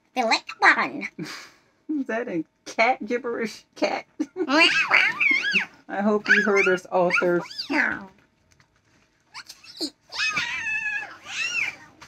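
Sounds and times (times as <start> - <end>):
child squeaking: 4.5 - 5.7, 6.3 - 7.8, 9.4 - 12.0.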